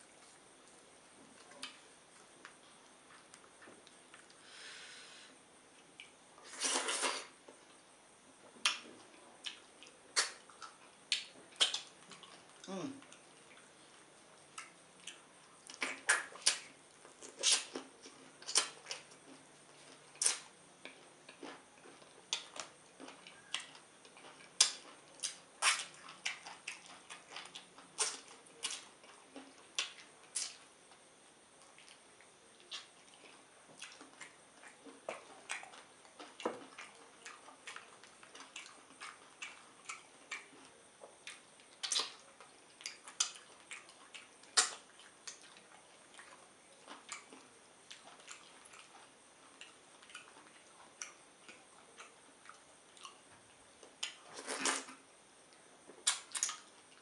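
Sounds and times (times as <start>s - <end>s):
wet chewing and sucking: 5.8s - 7.6s, 8.6s - 13.8s, 14.5s - 31.0s, 31.6s - 55.0s, 55.9s - 57.0s.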